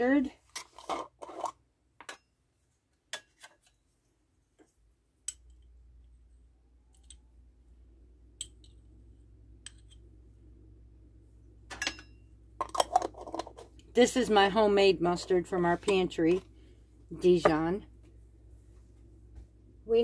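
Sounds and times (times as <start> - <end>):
low steady hum: 4.0 - 20.0.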